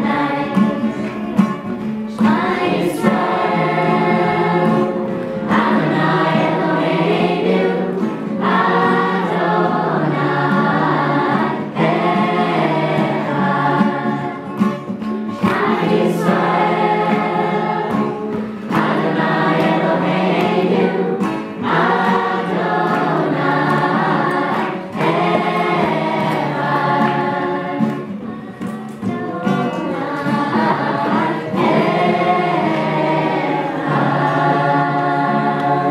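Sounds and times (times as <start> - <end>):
mixed choir singing: 0.0 - 35.9.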